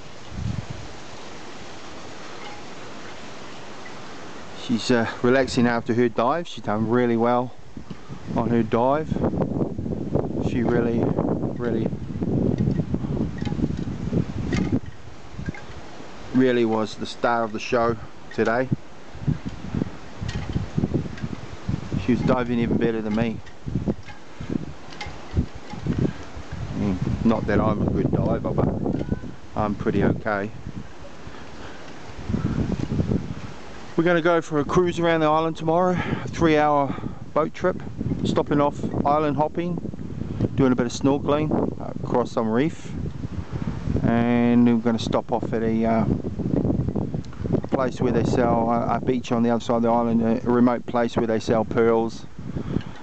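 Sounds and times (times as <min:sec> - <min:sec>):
dull low thumps: 0:00.0 - 0:01.0, 0:07.6 - 0:16.0, 0:17.9 - 0:33.8
outdoor background hiss: 0:00.0 - 0:53.0.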